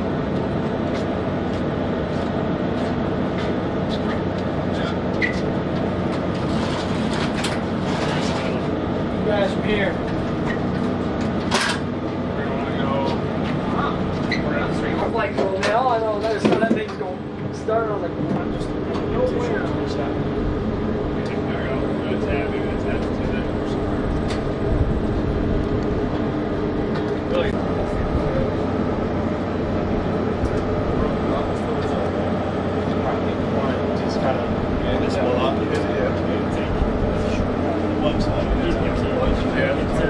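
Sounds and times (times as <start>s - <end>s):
machinery droning: 0.0s - 40.0s
people talking: 8.0s - 10.1s, 12.3s - 20.3s, 21.0s - 24.4s, 27.2s - 28.7s, 30.4s - 40.0s.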